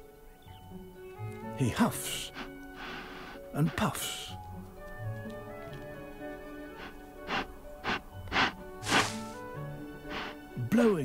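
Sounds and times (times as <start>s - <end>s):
background music: 0.0s - 11.0s
wolf blowing puffs of air: 2.2s - 3.6s, 6.6s - 10.6s.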